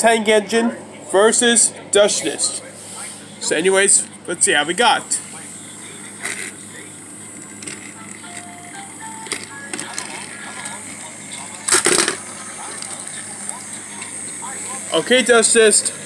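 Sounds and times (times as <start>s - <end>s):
toy trains humming on track: 2.8s - 16.0s.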